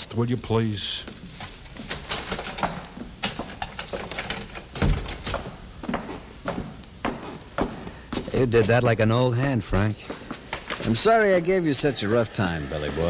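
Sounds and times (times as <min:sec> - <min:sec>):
footsteps walking away: 0:01.0 - 0:13.0.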